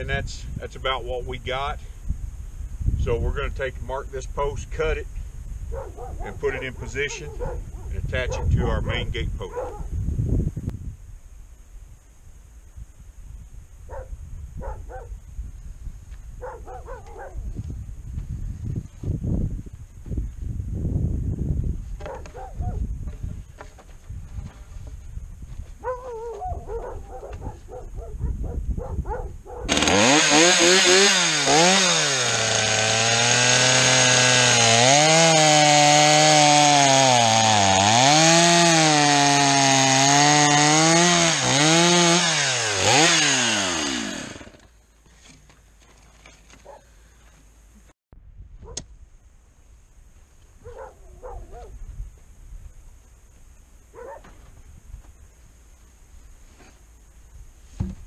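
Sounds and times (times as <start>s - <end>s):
chainsaw cutting wood: 29.7s - 45.4s.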